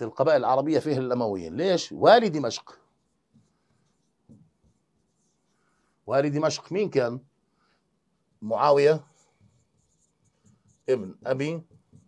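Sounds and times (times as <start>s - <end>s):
pen scratching on touchscreen: 9.1s - 12.0s.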